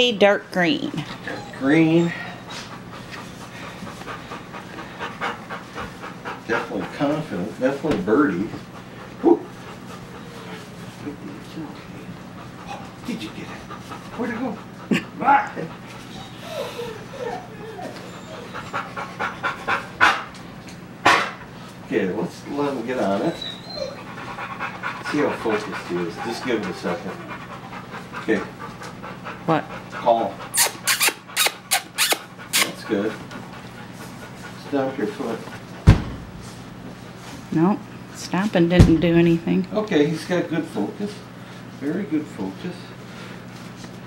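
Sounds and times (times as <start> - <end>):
puppy panting quickly: 0.8 - 20.5, 21.1 - 37.5.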